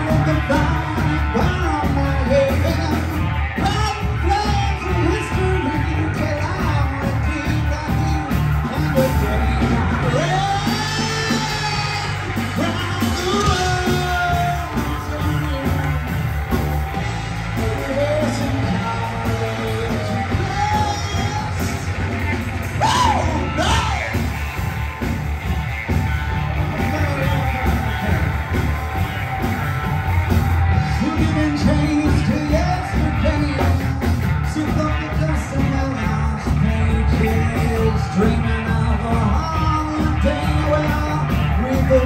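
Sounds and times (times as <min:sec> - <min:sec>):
man singing: 0:00.0 - 0:24.4, 0:30.7 - 0:42.0
bass guitar: 0:00.0 - 0:42.0
drums: 0:00.0 - 0:42.0
electric guitar: 0:00.0 - 0:42.0.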